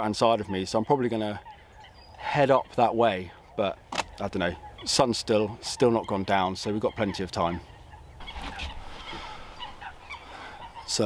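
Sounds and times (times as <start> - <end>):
wetland birds calling: 0.0 - 11.0.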